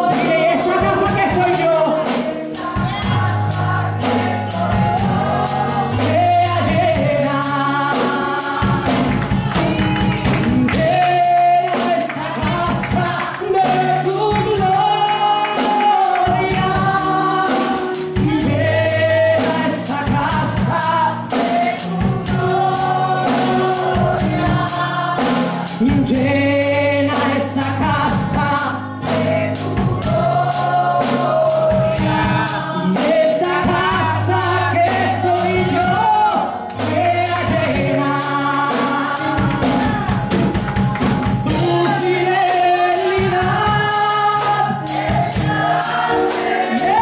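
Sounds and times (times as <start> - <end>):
music with a steady beat: 0.0 - 47.0
voices singing along: 0.0 - 47.0.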